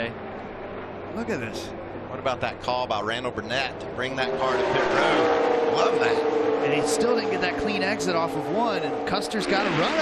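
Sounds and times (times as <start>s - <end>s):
race car engines at full throttle: 0.0s - 10.0s
commentator speaking: 1.2s - 10.0s.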